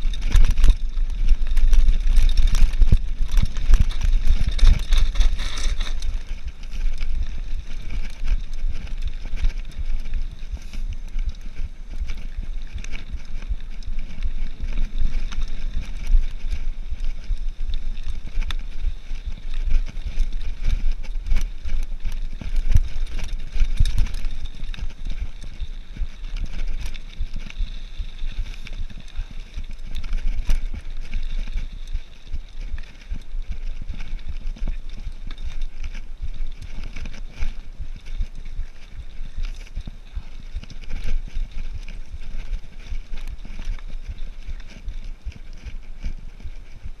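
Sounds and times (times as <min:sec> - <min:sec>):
bike rattling over bumps: 0:00.0 - 0:47.0
tyres crunching over stones: 0:00.0 - 0:47.0
wind rumbling on microphone: 0:00.0 - 0:47.0.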